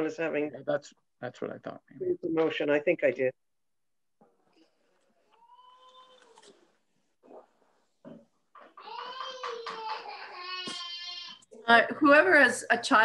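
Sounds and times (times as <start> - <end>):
young child crying: 8.8 - 11.4.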